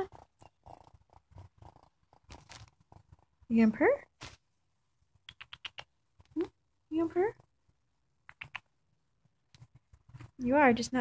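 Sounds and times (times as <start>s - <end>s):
raccoon purring: 0.0s - 4.1s, 5.3s - 8.7s.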